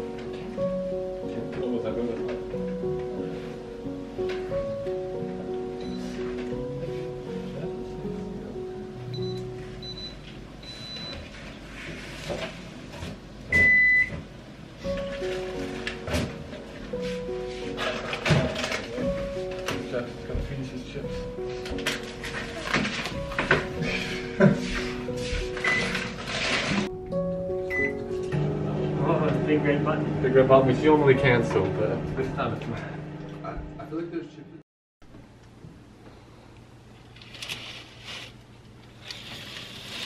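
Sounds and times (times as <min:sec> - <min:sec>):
soft background music: 0:00.0 - 0:12.1, 0:13.4 - 0:34.6
kitchen appliance beeping: 0:13.5 - 0:14.1, 0:27.7 - 0:28.0.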